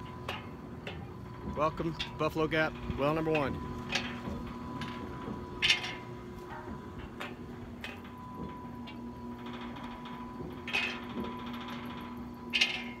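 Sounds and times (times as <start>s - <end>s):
pumpjack humming: 0.0s - 13.0s.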